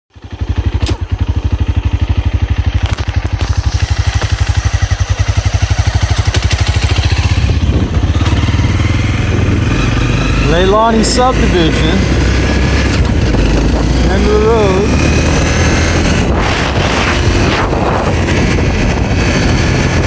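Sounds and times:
motorbike engine pulling away: 0.2s - 20.0s.

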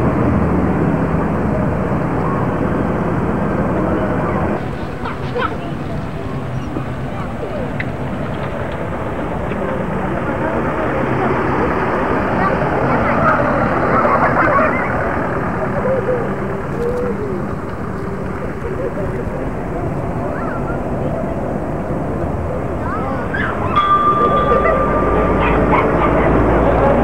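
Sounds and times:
faint indistinct voices: 0.0s - 27.0s
vehicle engine low hum: 0.0s - 27.0s.

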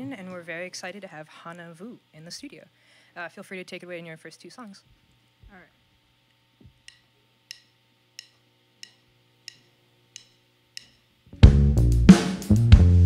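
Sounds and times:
faint amplifier hum: 0.0s - 13.0s
drumstick clicks: 6.3s - 11.1s
rock band playing: 11.4s - 13.0s.

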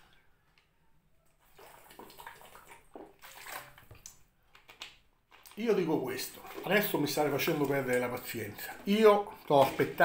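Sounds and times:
gulping water from plastic bottle: 5.4s - 10.0s.

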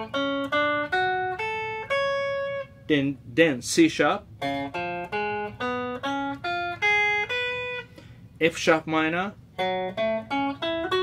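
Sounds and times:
electric guitar picking arpeggio: 0.0s - 2.9s, 4.3s - 8.2s, 9.5s - 11.0s.

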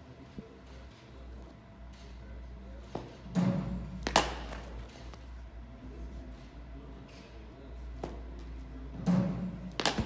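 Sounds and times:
bat striking ball: 3.3s - 4.7s.

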